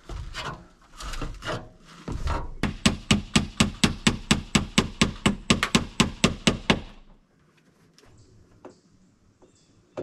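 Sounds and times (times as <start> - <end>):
hammer striking nails: 2.6 - 7.1.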